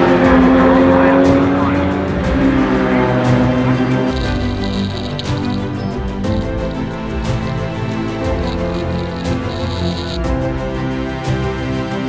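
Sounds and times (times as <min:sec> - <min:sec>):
race car engine at high revs: 0:00.0 - 0:10.2.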